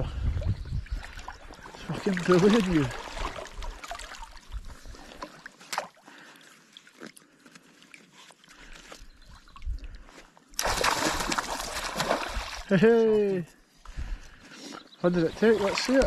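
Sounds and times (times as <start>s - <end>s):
water lapping: 0.9s - 13.1s, 14.0s - 16.0s
fish splashing: 1.9s - 4.4s, 10.6s - 12.7s.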